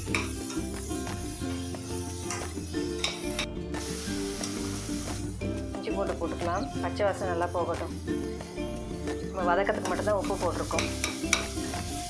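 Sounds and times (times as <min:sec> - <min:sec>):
onions and tomatoes sizzling in oil: 0:00.0 - 0:12.0.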